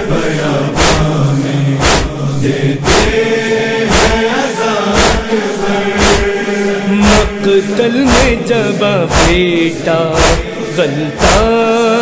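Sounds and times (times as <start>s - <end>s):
men chanting a lament: 0.0s - 12.0s
chest-striking beat: 0.8s - 1.2s, 2.9s - 3.2s, 3.9s - 4.3s, 5.0s - 5.3s, 6.0s - 6.4s, 7.0s - 10.6s, 11.2s - 11.7s.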